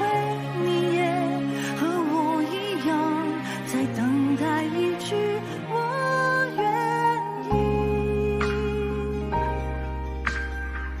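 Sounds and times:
woman singing ballad: 0:00.0 - 0:10.2
sustained backing chords: 0:00.0 - 0:11.0.

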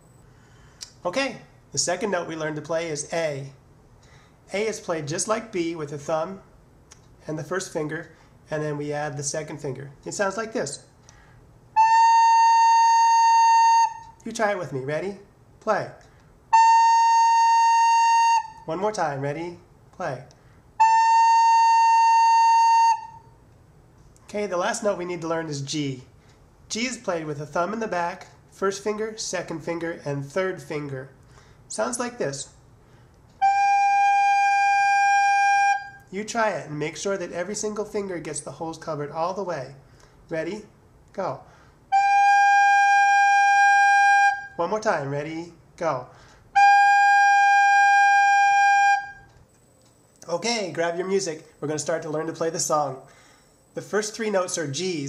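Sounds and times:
recorder playing a long note: 0:11.8 - 0:14.2, 0:16.5 - 0:18.7, 0:20.8 - 0:23.2, 0:33.4 - 0:36.0, 0:41.9 - 0:44.6, 0:46.6 - 0:49.3.

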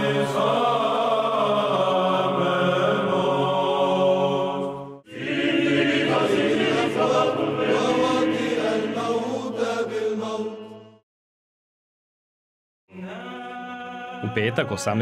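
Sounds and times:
choir chanting: 0:00.0 - 0:11.0, 0:12.9 - 0:15.0.

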